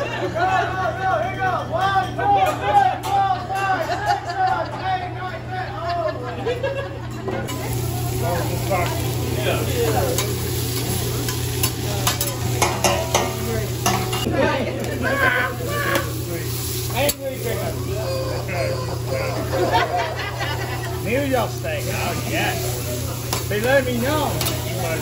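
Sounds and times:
faint voices: 0:00.0 - 0:25.0
vegetables sizzling on griddle: 0:07.5 - 0:25.0
metal spatulas scraping griddle: 0:22.2 - 0:25.0.

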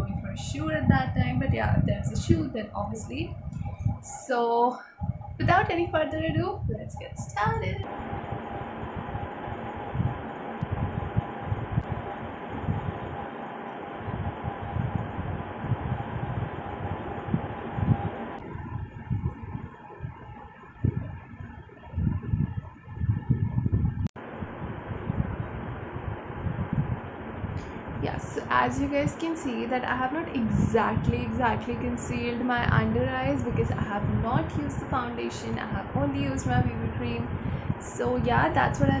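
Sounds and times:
room hiss with fan hum: 0:00.0 - 0:39.0.

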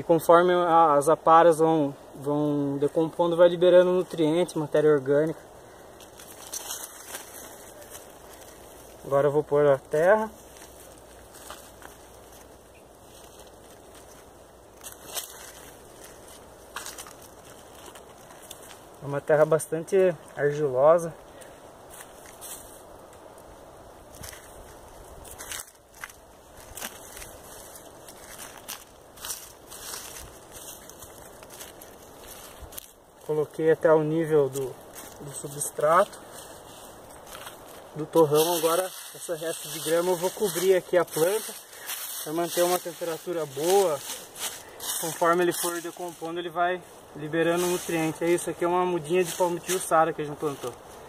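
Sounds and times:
faint background noise: 0:00.0 - 0:51.0
hands rustling soil and leaves: 0:00.0 - 0:51.0
outdoor background hiss: 0:00.0 - 0:51.0.

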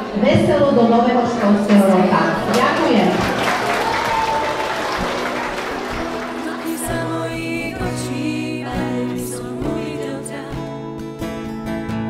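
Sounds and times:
music: 0:00.3 - 0:12.0
audience applauding: 0:01.5 - 0:07.8.

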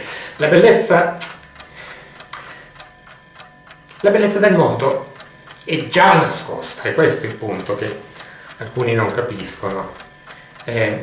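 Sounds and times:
faint steady ticking: 0:00.0 - 0:11.0.

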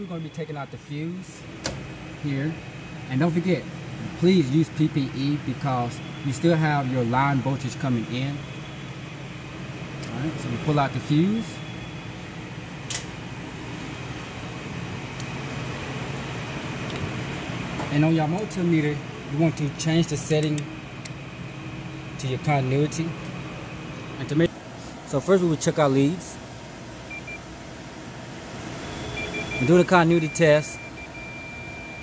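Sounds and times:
industrial machinery hum and hiss: 0:00.0 - 0:32.0
multimeter continuity beep: 0:11.2 - 0:12.2, 0:27.1 - 0:27.4, 0:28.9 - 0:32.0.

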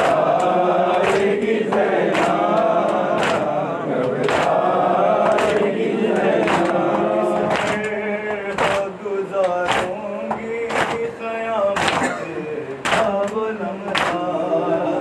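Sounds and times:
men chanting a lament: 0:00.0 - 0:15.0
sharp rhythmic beat: 0:00.0 - 0:15.0.

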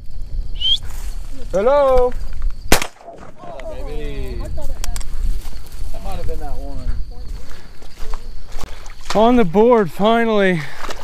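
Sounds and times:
shotgun blast: 0:02.7 - 0:03.3.

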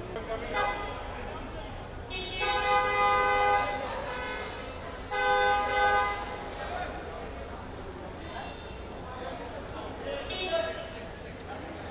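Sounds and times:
car horn honking: 0:02.1 - 0:06.4.

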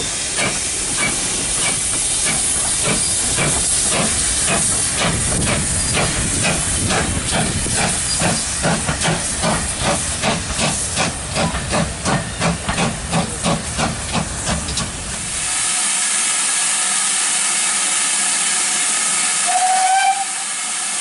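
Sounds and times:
steam hissing: 0:00.0 - 0:21.0
steam locomotive exhaust beats: 0:00.0 - 0:21.0.

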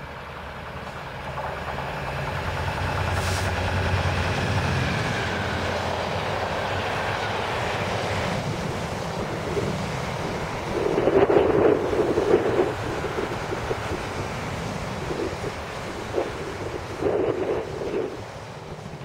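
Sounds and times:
diesel locomotive engine passing: 0:00.0 - 0:19.0
wagons rumbling on rails: 0:00.0 - 0:19.0.

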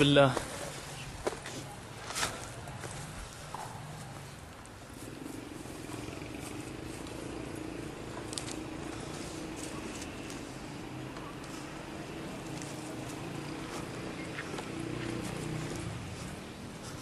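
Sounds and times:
footsteps on dry ground and brush: 0:00.0 - 0:10.7, 0:11.4 - 0:17.0.

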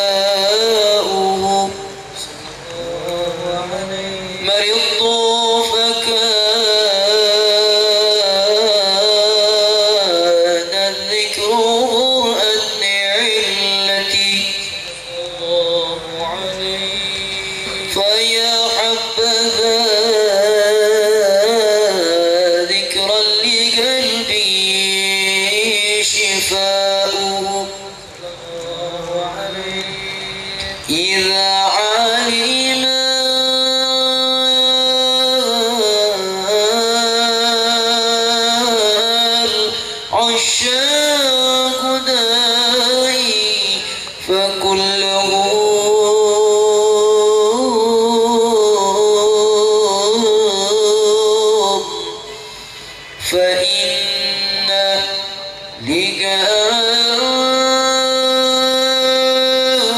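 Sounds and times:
men singing devotional song: 0:00.0 - 0:59.9.

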